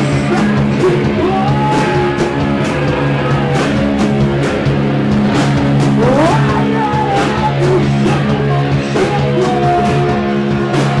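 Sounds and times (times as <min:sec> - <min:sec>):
distorted guitar chords: 0:00.0 - 0:10.2.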